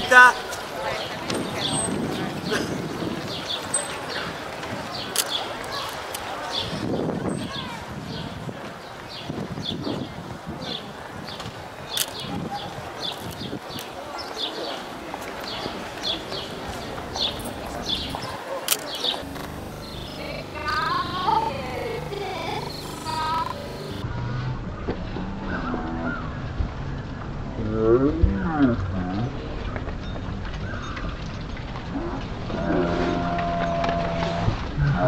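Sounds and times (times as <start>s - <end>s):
indistinct voices: 12.0s - 24.1s.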